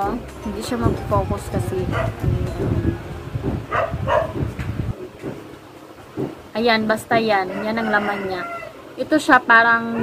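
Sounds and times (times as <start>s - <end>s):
low rumble: 0.0s - 5.0s
dog barking: 1.9s - 2.2s, 3.7s - 4.5s.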